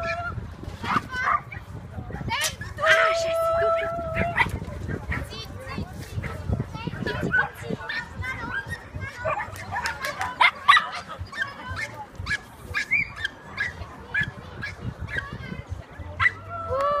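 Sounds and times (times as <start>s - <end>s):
dog barking: 8.6s - 14.8s.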